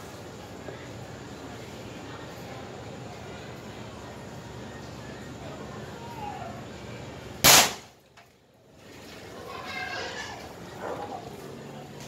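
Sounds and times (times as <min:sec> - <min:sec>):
air rifle shot: 0:07.4 - 0:07.9.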